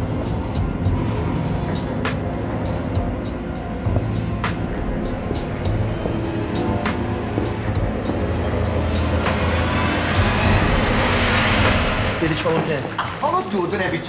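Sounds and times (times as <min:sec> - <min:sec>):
tense background music drone: 0:00.0 - 0:14.0.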